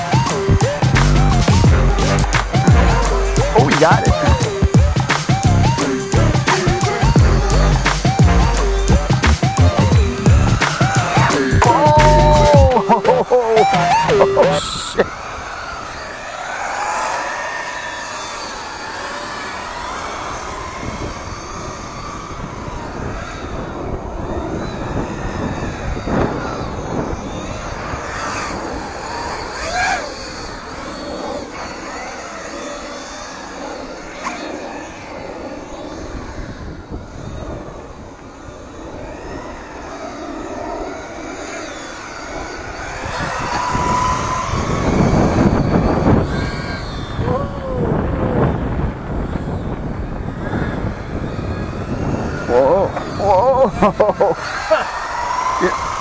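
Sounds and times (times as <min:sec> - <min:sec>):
electric motor whining: 0:00.0 - 0:56.0.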